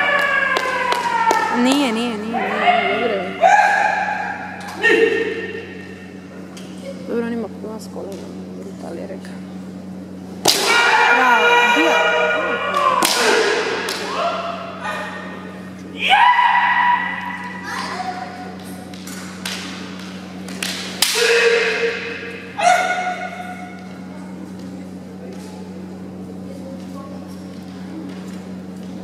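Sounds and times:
fighters shouting: 0.0 - 5.9, 10.5 - 18.5, 21.0 - 23.7
bamboo sword strikes cracking: 10.4 - 10.9, 13.0 - 14.1, 20.5 - 22.1.

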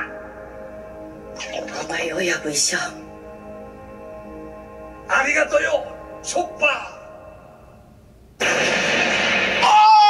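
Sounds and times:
loud rushing noise: 8.4 - 10.0.

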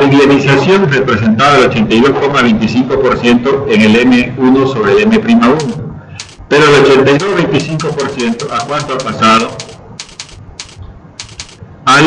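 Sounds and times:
keyboard keys clicking: 5.6 - 6.5, 7.2 - 11.6
man's voice: 6.5 - 9.6.

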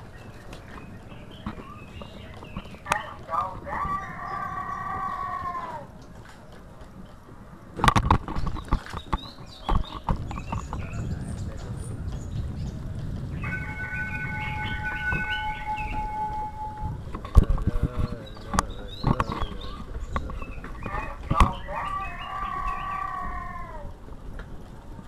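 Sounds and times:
steady low rumble: 9.2 - 21.6
steady high tone: 13.3 - 17.0.

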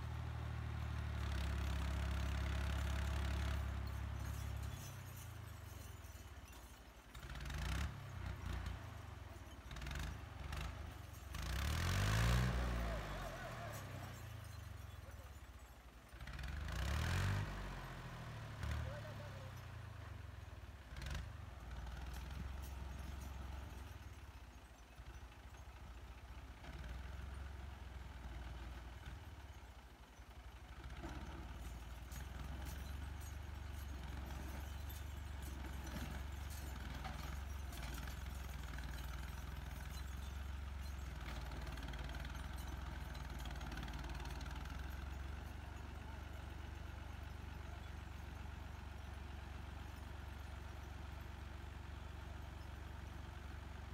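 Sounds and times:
tractor diesel engine labouring: 0.0 - 53.9.

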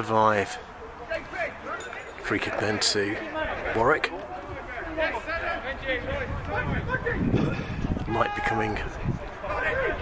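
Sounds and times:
voices calling out: 0.2 - 10.0.

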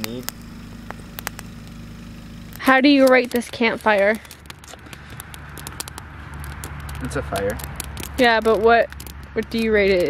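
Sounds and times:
campfire crackling: 0.0 - 10.0
low steady rumble: 0.0 - 10.0.

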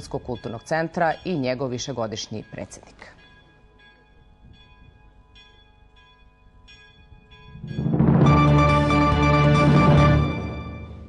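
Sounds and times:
church bells tolling: 0.3 - 11.0
loud music: 7.6 - 11.0.

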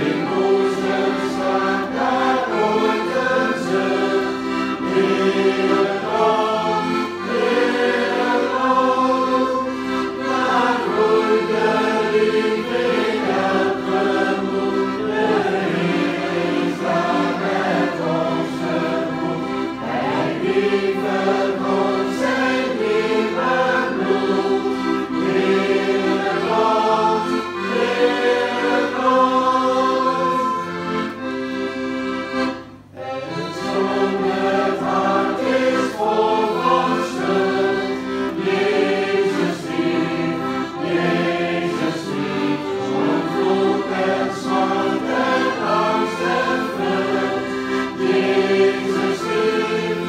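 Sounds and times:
accordion: 0.0 - 50.0
group singing a hymn: 0.0 - 50.0.

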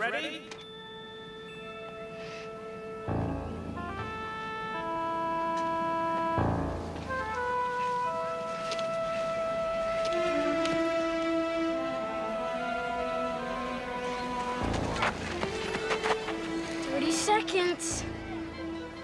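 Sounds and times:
held music notes: 0.6 - 19.0
low hit: 3.1 - 4.4.

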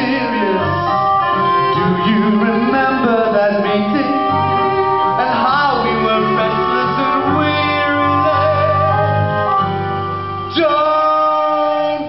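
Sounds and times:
acoustic band playing: 0.0 - 12.0
bass notes: 0.0 - 12.0
man singing with vibrato: 0.0 - 12.0.

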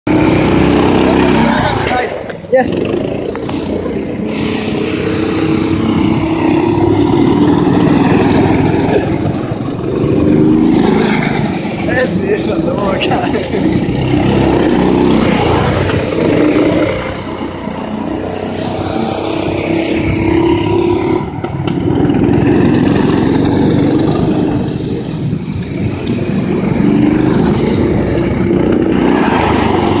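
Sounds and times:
go-kart engine running: 0.1 - 30.0.

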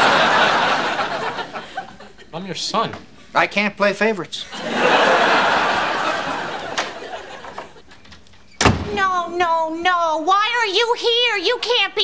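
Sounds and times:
studio audience laughter: 0.0 - 2.3, 4.5 - 7.9.

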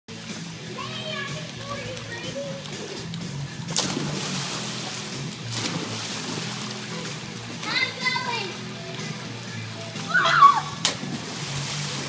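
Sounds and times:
loud water splash: 3.7 - 7.0, 10.1 - 12.0.

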